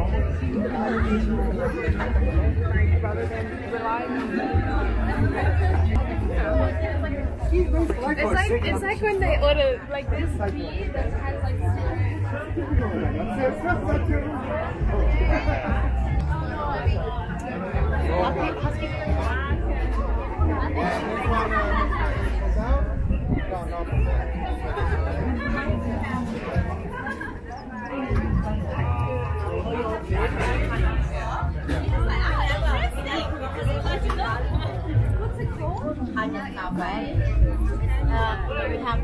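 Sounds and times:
crowd chatter: 0.0s - 39.0s
people talking nearby: 0.0s - 39.0s.

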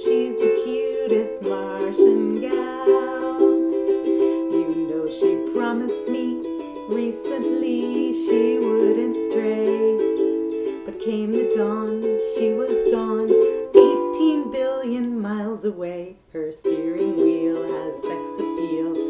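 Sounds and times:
ukulele strumming: 0.0s - 19.0s
woman singing: 0.0s - 19.0s.

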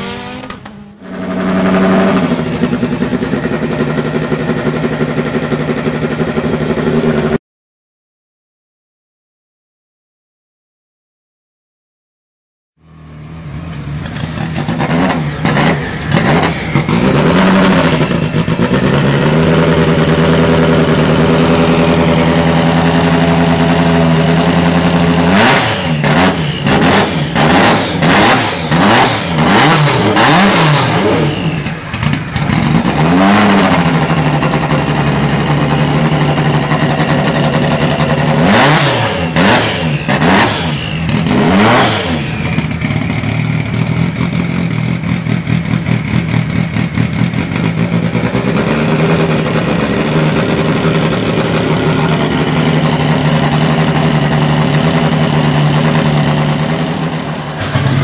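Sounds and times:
rally car engine revving: 0.0s - 7.4s, 13.2s - 58.0s.

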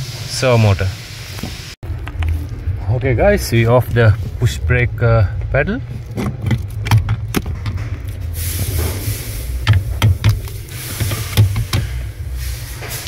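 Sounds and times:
low steady rumble: 1.0s - 13.0s.

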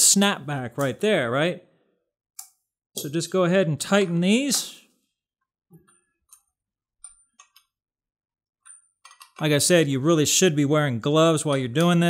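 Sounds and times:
wrench clicking on metal nuts: 8.7s - 9.5s.

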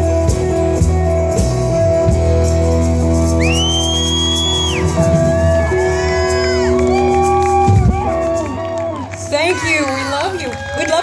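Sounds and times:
rock band sustained chord: 0.0s - 9.6s
shrill whistle from audience: 3.4s - 5.0s.

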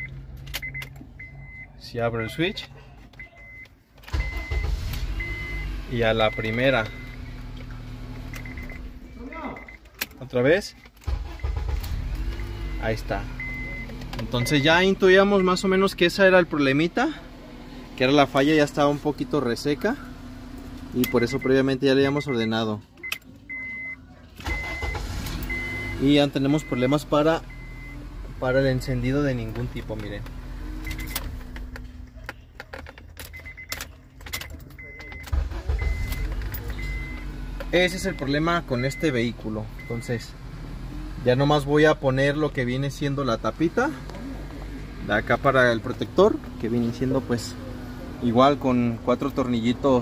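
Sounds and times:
car engine humming: 0.0s - 50.0s
dashboard chime beeps: 12.4s - 15.8s, 21.0s - 28.0s, 33.3s - 39.2s, 39.8s - 40.3s
keys jangling in ignition: 29.4s - 38.4s.

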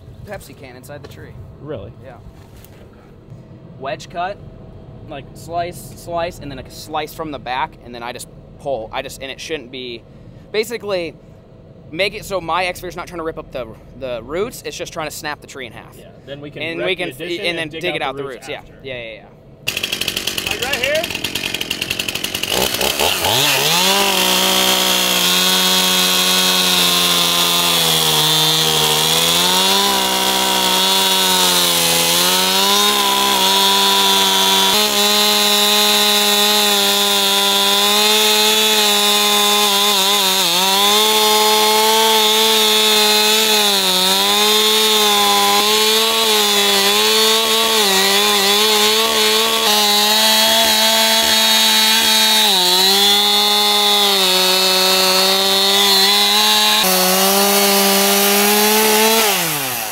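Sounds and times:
chainsaw cutting into tree trunk: 19.6s - 59.9s.

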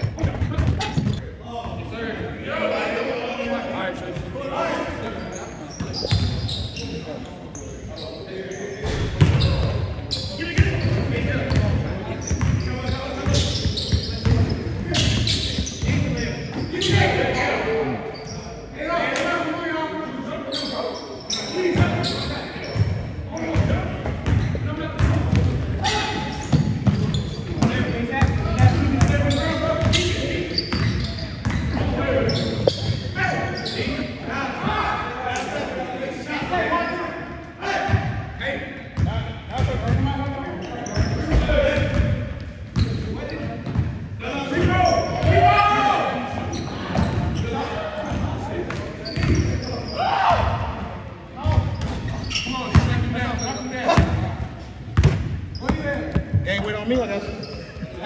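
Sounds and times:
players' voices and calls: 0.0s - 58.0s.

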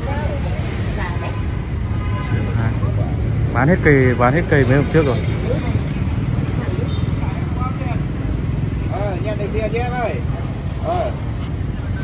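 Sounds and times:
low rumble of street noise: 0.0s - 12.0s
voices talking: 0.0s - 12.0s.

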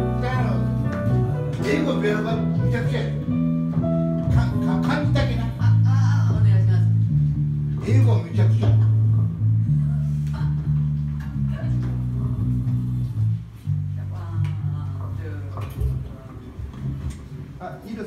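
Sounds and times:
band music: 0.0s - 13.9s
electric bass guitar: 0.0s - 17.6s.

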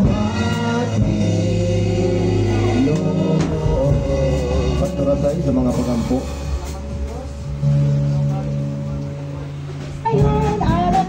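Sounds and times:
person singing: 0.0s - 6.2s
church worship music over pa: 0.0s - 11.0s.

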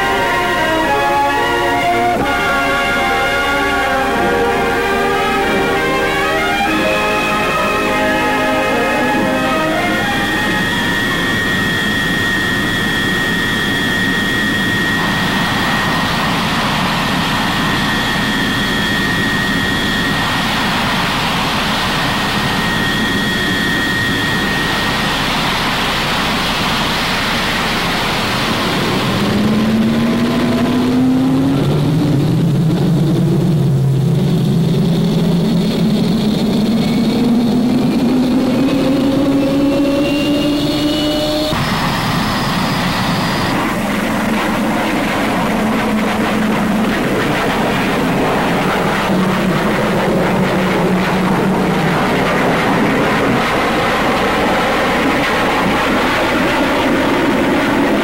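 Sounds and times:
low tones rising in pitch: 0.0s - 25.3s, 27.5s - 43.9s
jet aircraft rushing with high whine: 0.0s - 58.0s.

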